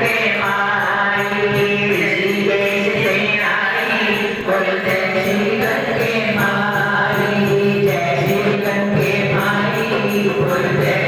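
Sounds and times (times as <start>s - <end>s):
voices singing a chant: 0.0s - 11.0s.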